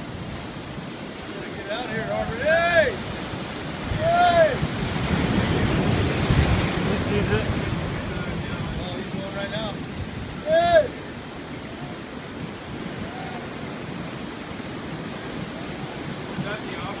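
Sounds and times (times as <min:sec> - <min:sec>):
ocean surf washing over rocks: 0:00.0 - 0:17.0
person shouting: 0:03.9 - 0:04.6, 0:10.4 - 0:11.0.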